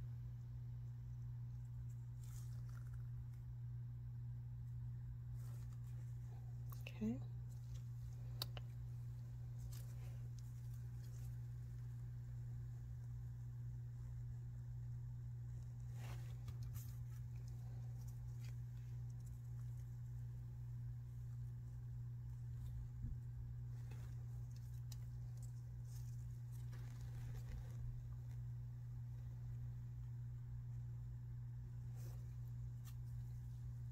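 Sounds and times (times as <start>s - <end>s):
steady low hum: 0.0s - 33.9s.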